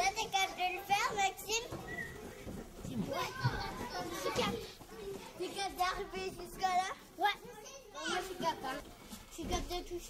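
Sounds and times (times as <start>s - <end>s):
children playing in a hall: 0.0s - 10.0s
children's voices: 0.0s - 10.0s.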